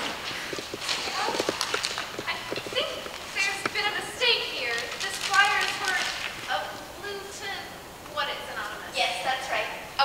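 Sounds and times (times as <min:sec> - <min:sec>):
voices: 0:00.8 - 0:10.0.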